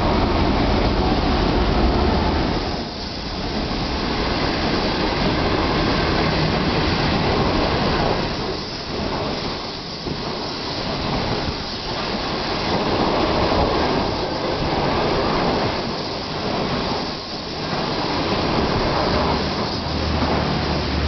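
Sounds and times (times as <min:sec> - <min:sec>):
train wheels rumbling on rails: 0:00.0 - 0:21.0.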